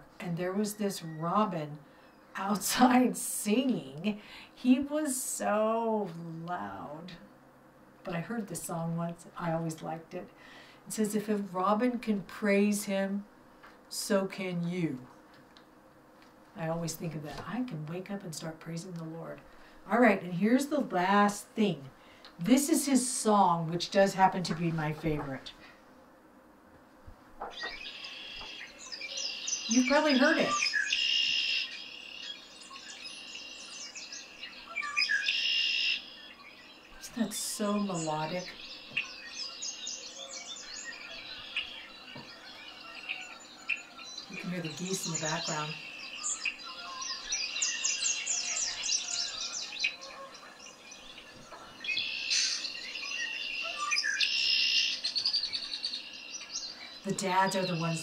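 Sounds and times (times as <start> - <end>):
recorded blackbird chirps: 27.4 - 58.0
bird song from a tablet speaker: 27.5 - 37.0, 37.9 - 58.0.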